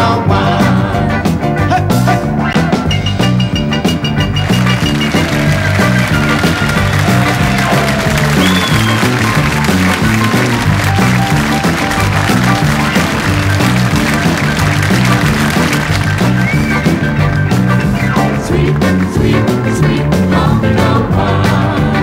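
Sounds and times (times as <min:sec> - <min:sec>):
live country music with piano: 0:00.0 - 0:22.0.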